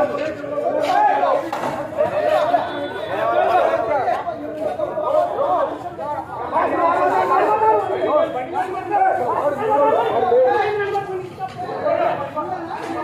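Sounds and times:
men talking at once: 0:00.0 - 0:13.0.

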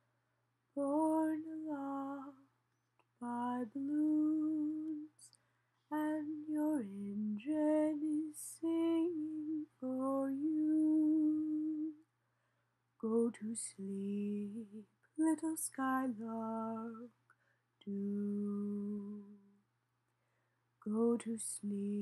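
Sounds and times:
woman singing a lullaby: 0:00.8 - 0:12.0, 0:13.0 - 0:17.2, 0:17.8 - 0:19.6, 0:20.8 - 0:22.0.

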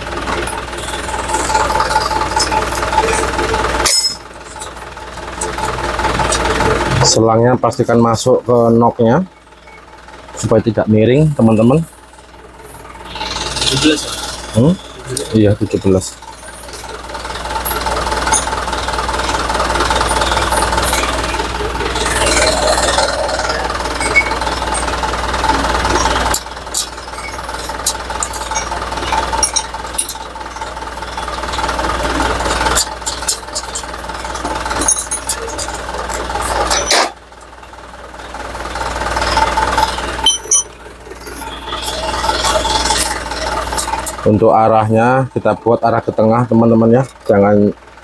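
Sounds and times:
machine motor humming: 0:12.0 - 0:44.3.

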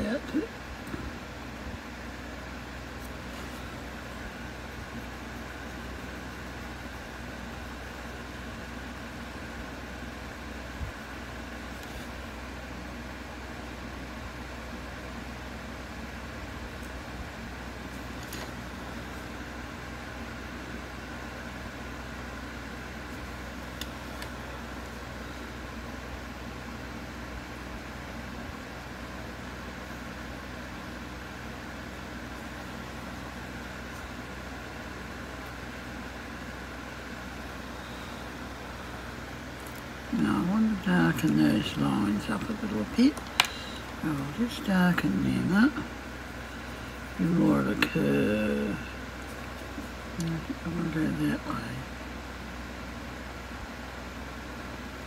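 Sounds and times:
low mechanical drone: 0:00.0 - 0:55.0.

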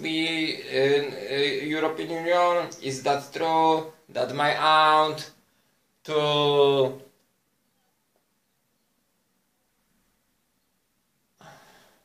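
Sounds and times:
man sighing: 0:11.4 - 0:12.0.

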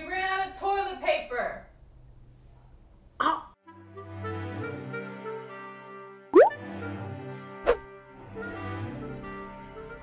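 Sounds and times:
cartoon bloop pop effects: 0:06.4 - 0:06.6.

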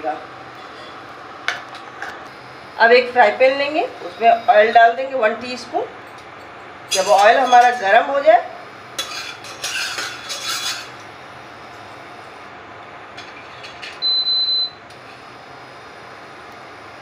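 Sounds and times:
rustle and clatter at pan: 0:09.0 - 0:10.9.

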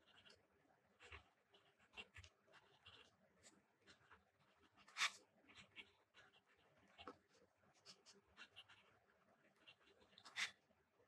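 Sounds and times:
pen scratching on paper: 0:01.0 - 0:10.6.

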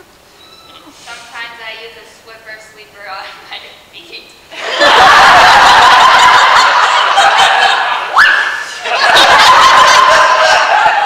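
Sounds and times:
audience laughing loudly: 0:04.5 - 0:11.0.

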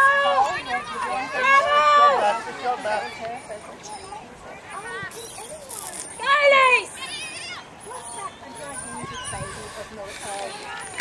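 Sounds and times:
people shouting: 0:00.0 - 0:03.0.

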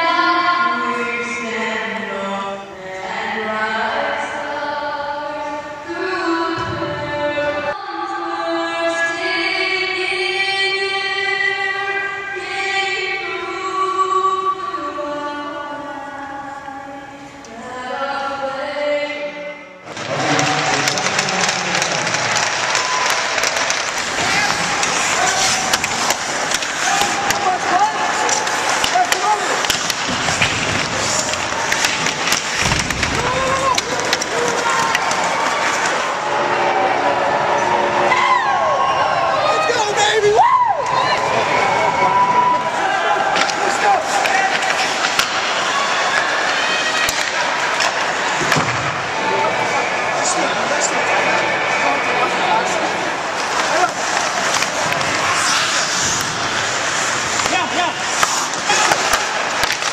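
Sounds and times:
crowd talking and calling out: 0:19.8 - 0:59.9
hockey sticks and puck clacking: 0:19.9 - 0:36.2, 0:43.0 - 0:49.3, 0:52.9 - 0:59.9
skates scraping ice: 0:19.9 - 0:38.1, 0:39.4 - 0:59.9.

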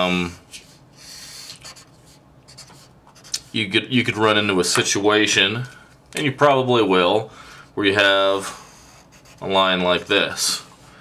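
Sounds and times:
marker scratching on paper: 0:01.4 - 0:03.6, 0:08.6 - 0:09.6.

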